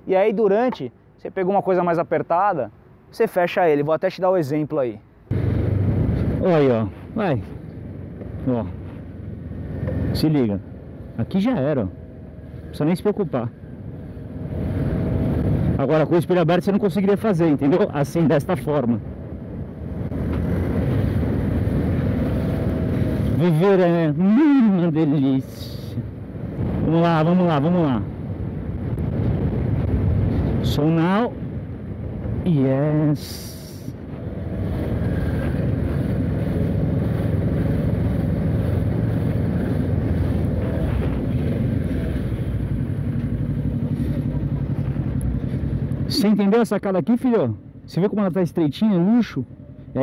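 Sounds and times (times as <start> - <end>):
wind on microphone: 5.3 - 10.1, 18.9 - 24.1, 25.4 - 46.1
motorcycle engine running: 34.6 - 46.1.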